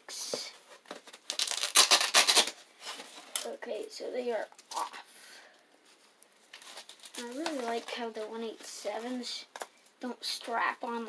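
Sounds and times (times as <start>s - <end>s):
rustling and scraping of packaging: 0.2s - 3.5s, 5.8s - 9.7s.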